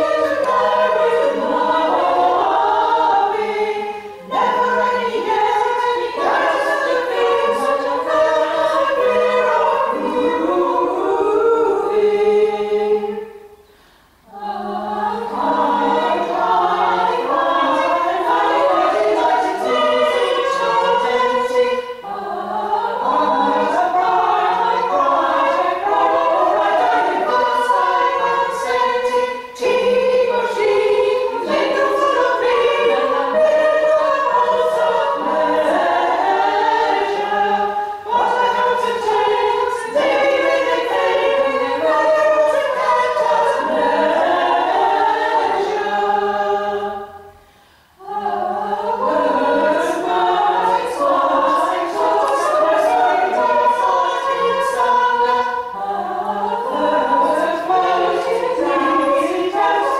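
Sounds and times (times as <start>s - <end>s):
women's choir singing a cappella: 0.0s - 59.9s.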